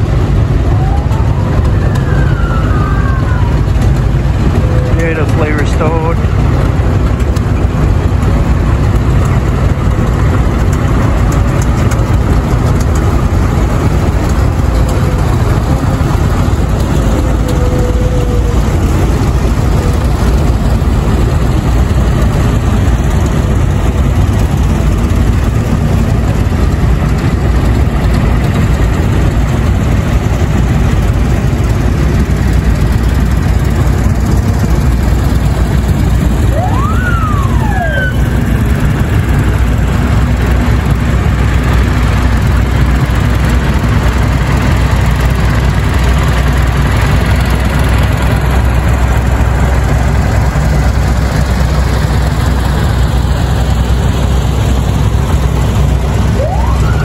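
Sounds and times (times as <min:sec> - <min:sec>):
tractor engines rumbling: 0:00.0 - 0:57.0
rising and falling whistle: 0:36.5 - 0:38.4, 0:56.3 - 0:57.0.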